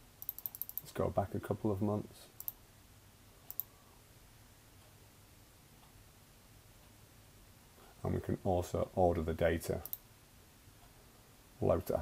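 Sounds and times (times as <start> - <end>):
computer mouse clicks: 0.2 - 0.9, 2.4 - 2.6, 3.5 - 3.7, 9.8 - 10.0.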